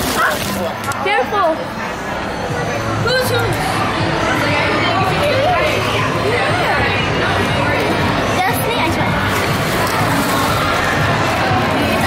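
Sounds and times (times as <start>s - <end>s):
babble of many voices: 0.0s - 12.0s.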